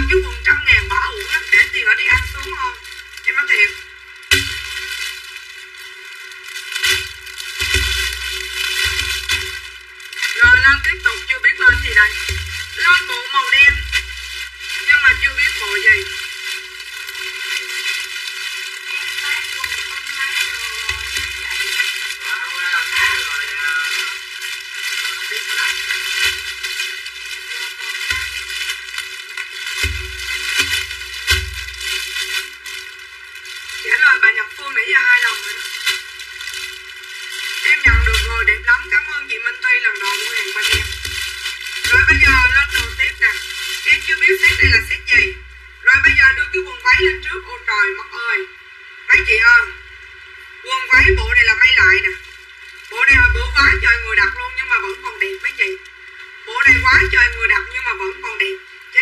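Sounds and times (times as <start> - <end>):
woman talking: 0.0 - 3.8, 10.2 - 14.1, 14.7 - 16.3, 18.8 - 23.9, 33.8 - 35.8, 37.6 - 41.0, 41.9 - 48.5, 49.1 - 49.8, 50.6 - 52.2, 52.9 - 55.8, 56.4 - 59.0.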